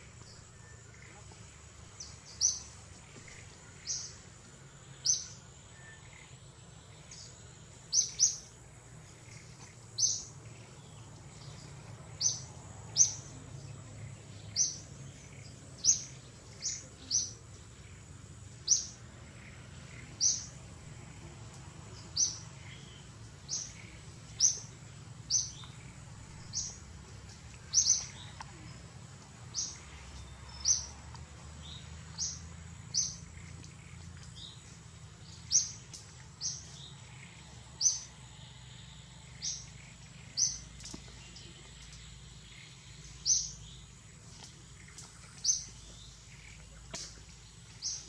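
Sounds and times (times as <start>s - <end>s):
bird chirping: 4.9s - 28.9s, 29.5s - 48.0s.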